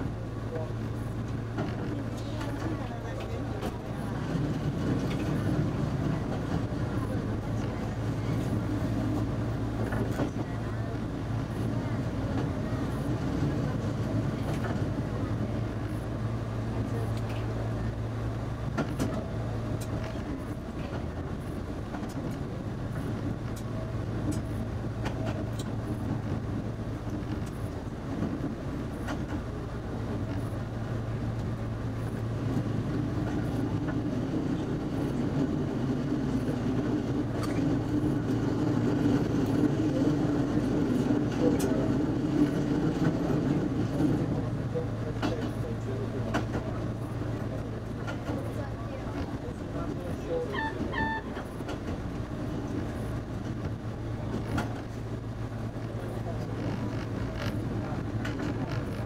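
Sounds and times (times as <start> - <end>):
railcar engine drone: 0.0 - 59.0.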